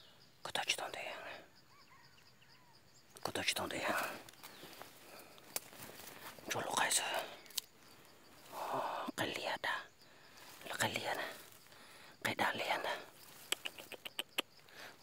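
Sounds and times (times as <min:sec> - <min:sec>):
person whispering: 0:00.4 - 0:01.5, 0:03.2 - 0:07.6, 0:08.4 - 0:15.0.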